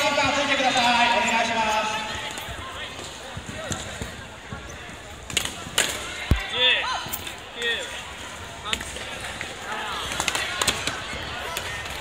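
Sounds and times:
hubbub of voices in hall: 0:00.0 - 0:12.0.

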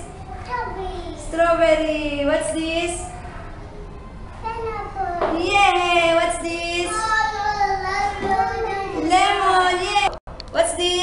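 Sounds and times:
child singing: 0:07.0 - 0:09.0.

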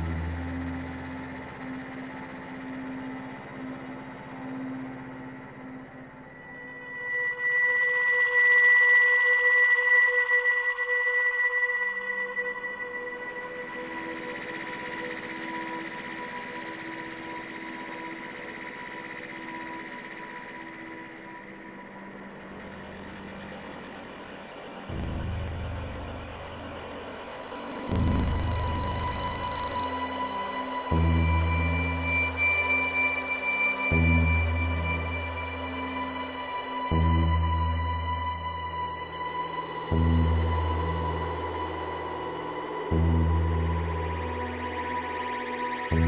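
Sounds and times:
low drone: 0:00.0 - 0:06.8, 0:19.0 - 0:46.0
deep bass notes: 0:24.9 - 0:27.0, 0:27.9 - 0:29.7.

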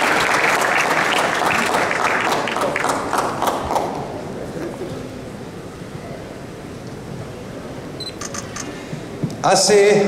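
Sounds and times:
crowd hubbub in a hall: 0:00.0 - 0:10.0
camera shutter clicks: 0:08.2 - 0:08.8.

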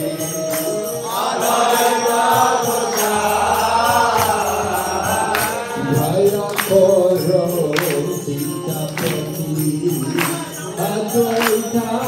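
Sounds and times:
small hand cymbals beating: 0:00.0 - 0:12.0
voices chanting a mantra: 0:00.0 - 0:12.0.

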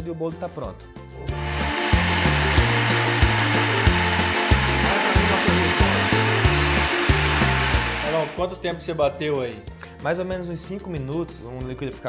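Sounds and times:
blender whirring: 0:01.3 - 0:08.4
background music with beat: 0:01.3 - 0:08.5.

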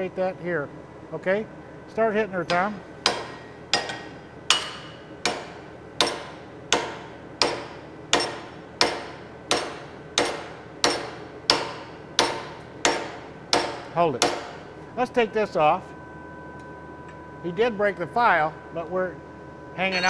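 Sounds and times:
hammer striking steel: 0:02.4 - 0:14.6.

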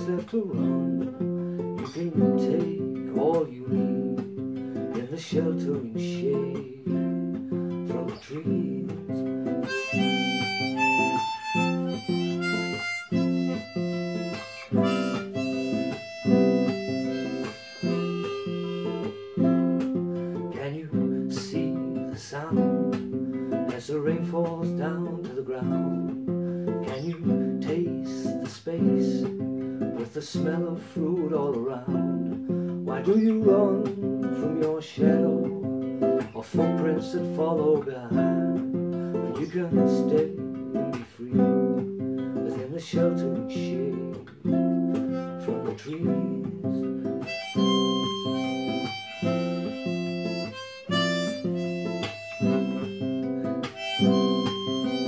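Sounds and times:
classical guitar strummed: 0:00.0 - 0:55.0
harmonica melody: 0:09.3 - 0:20.5, 0:46.3 - 0:55.0.

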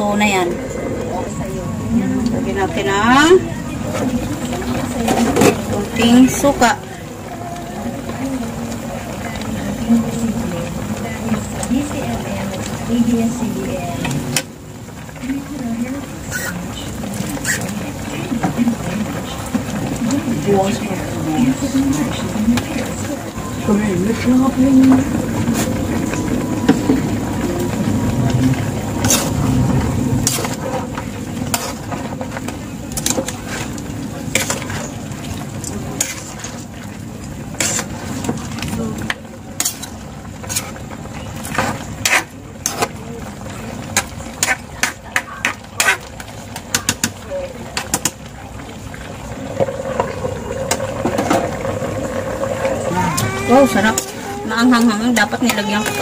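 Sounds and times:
metal spatula scraping a pan: 0:37.6 - 0:38.0.

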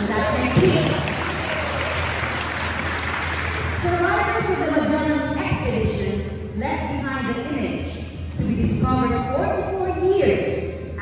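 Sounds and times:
crowd applauding: 0:00.0 - 0:04.5.

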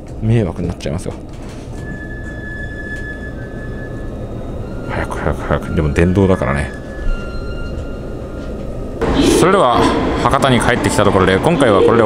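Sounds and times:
train running noise: 0:00.0 - 0:12.0.

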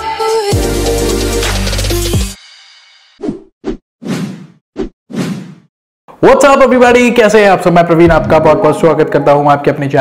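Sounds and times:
low thud: 0:08.0 - 0:08.6.

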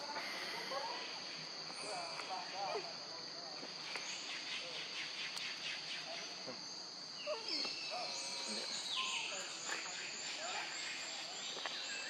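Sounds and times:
insects droning high-pitched: 0:00.0 - 0:12.0.

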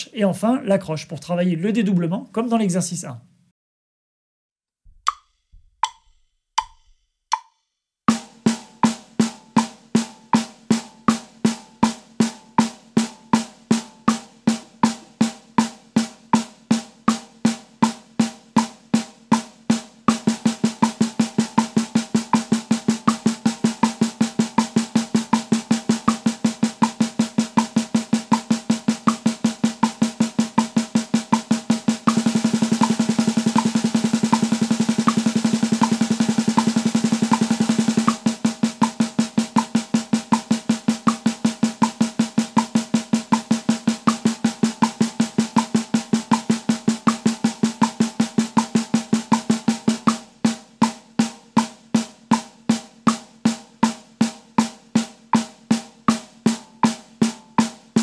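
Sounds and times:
metronome ticks: 0:05.0 - 0:12.7, 0:20.1 - 0:51.7, 0:52.3 - 0:54.0
snare drum strokes and roll: 0:08.1 - 0:58.0.

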